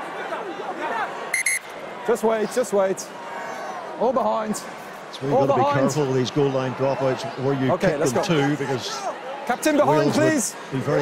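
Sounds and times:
stadium crowd murmur: 0:00.0 - 0:11.0
referee's whistle blasts: 0:01.3 - 0:01.7.

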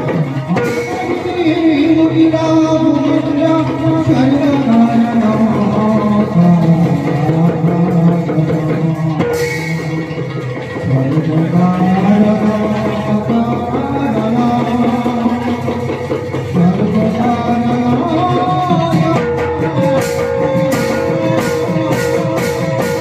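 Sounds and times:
barrel drums beating: 0:00.0 - 0:23.0
person singing gliding melody: 0:00.0 - 0:23.0.

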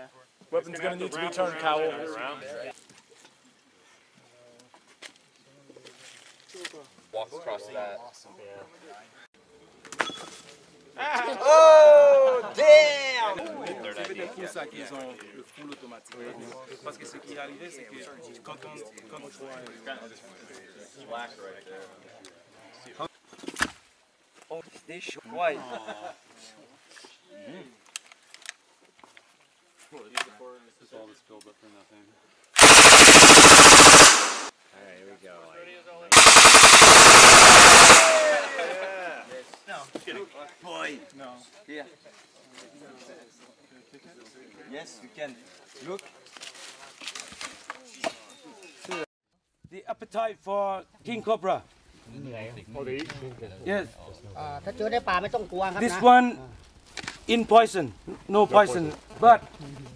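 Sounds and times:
sharp clicks: 0:36.1 - 0:38.6.

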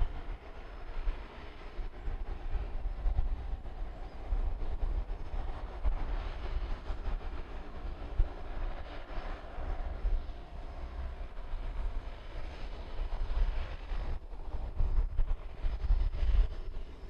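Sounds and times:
turboprop engines running: 0:00.0 - 0:17.0
wind rumbling on microphone: 0:00.0 - 0:17.0.

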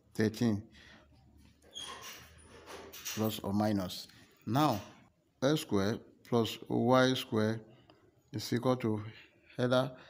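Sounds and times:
short high squeaks: 0:01.6 - 0:03.4.

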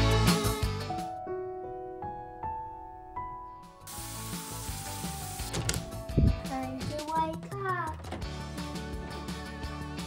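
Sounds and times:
soft background music: 0:00.0 - 0:10.0
steady hiss: 0:03.9 - 0:05.8
doorknob turning clicks: 0:05.5 - 0:05.9, 0:07.9 - 0:08.4.

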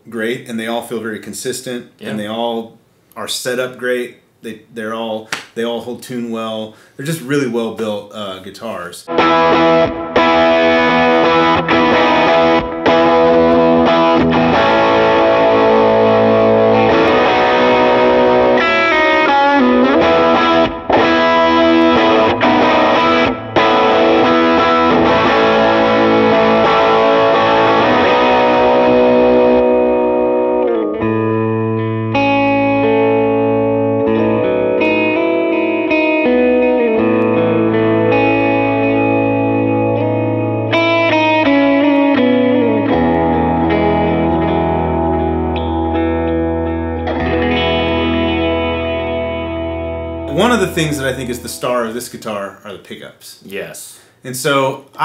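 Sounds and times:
electric guitar chords and lines: 0:09.1 - 0:51.9.

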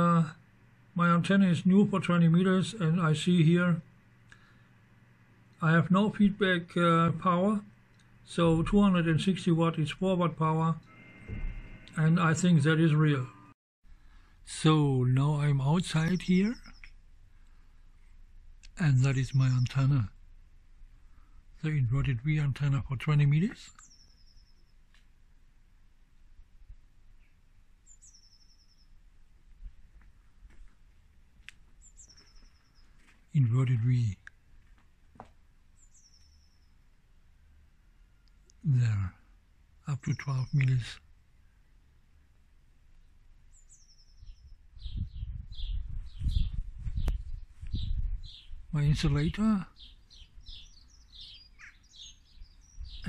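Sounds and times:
faint low background noise: 0:00.0 - 0:53.0
wind rumbling on microphone: 0:11.2 - 0:11.9, 0:44.2 - 0:49.4, 0:52.3 - 0:53.0
small birds chirping: 0:14.1 - 0:20.2, 0:21.0 - 0:25.2, 0:27.1 - 0:34.5, 0:35.3 - 0:53.0
small bird calling with trill: 0:15.7 - 0:17.0, 0:23.6 - 0:24.8, 0:27.2 - 0:29.0, 0:31.8 - 0:33.0, 0:35.8 - 0:36.8, 0:43.5 - 0:53.0.

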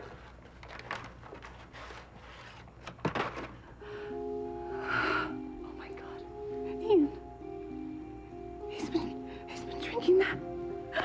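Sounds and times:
crumpled paper rustling: 0:00.0 - 0:03.6.

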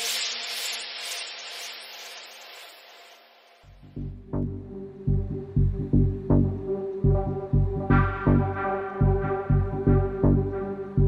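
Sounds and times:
hissing noise sweep: 0:00.0 - 0:04.2.

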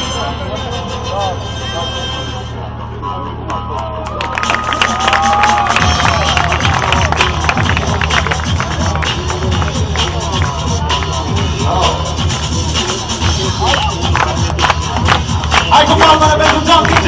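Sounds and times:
loud music with heavy bass: 0:00.0 - 0:17.0
crowd cheering and clapping: 0:03.8 - 0:11.5, 0:12.8 - 0:17.0.

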